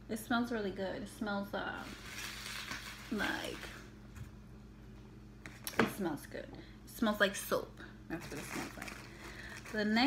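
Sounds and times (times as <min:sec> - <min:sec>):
woman breathing: 0:09.0 - 0:09.7.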